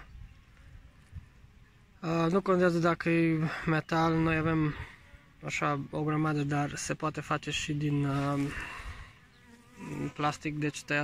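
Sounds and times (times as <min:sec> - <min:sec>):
bees buzzing: 0:03.2 - 0:11.0.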